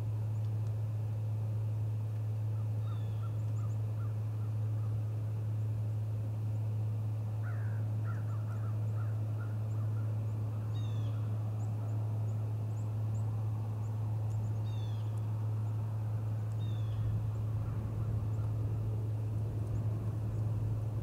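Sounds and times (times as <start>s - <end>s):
steady low hum: 0.0s - 21.0s
bird calls and chirps: 2.6s - 4.9s, 7.5s - 15.2s, 16.5s - 18.6s.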